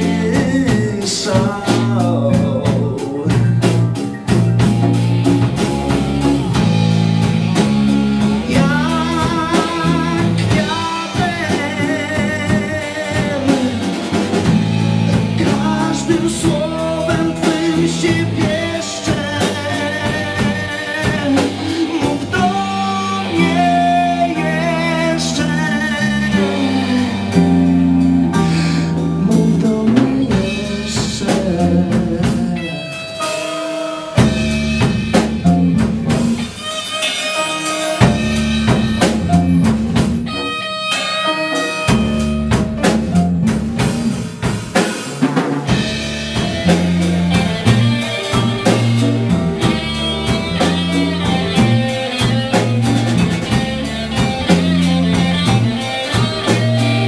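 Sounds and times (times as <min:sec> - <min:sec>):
person singing with vibrato: 0:00.0 - 0:03.8, 0:08.4 - 0:27.7, 0:28.3 - 0:34.2
bass guitar: 0:00.0 - 0:57.0
drum kit: 0:00.0 - 0:57.0
guitar: 0:00.0 - 0:57.0.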